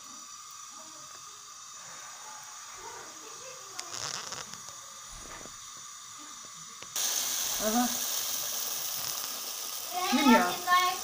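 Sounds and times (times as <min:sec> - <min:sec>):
dough sizzling in hot oil: 0:00.0 - 0:11.0.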